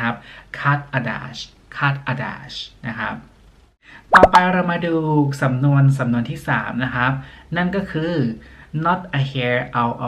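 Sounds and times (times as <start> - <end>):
sharp pop sound effect: 4.1 - 4.4
voice with downward sliding pitch: 4.1 - 4.4.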